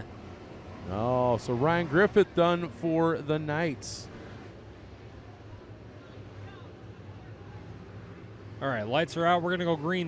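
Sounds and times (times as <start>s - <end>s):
race car engines at low revs: 0.0s - 10.0s.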